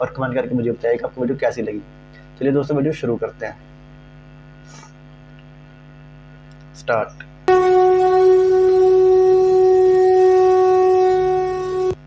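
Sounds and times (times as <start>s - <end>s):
horn blowing long note: 7.5s - 12.0s.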